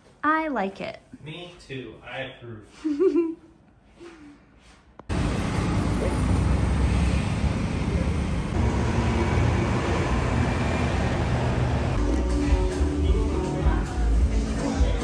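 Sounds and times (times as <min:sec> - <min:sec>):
passing cars road noise: 0:05.1 - 0:12.6.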